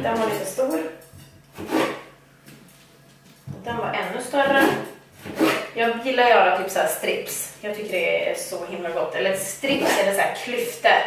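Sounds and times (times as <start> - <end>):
knife cutting potato: 1.5 - 2.1, 4.4 - 5.8.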